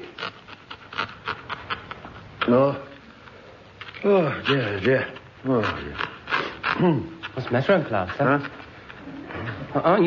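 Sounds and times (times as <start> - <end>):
pen nib scratching on paper: 0.0 - 10.0.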